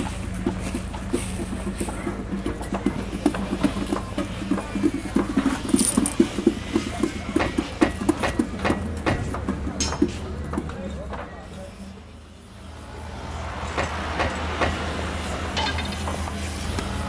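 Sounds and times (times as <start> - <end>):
hands drumming on metal bucket: 0.0 - 10.7.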